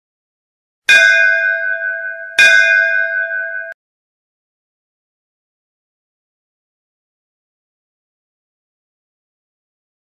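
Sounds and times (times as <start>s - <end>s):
bell ringing: 0.9s - 3.8s.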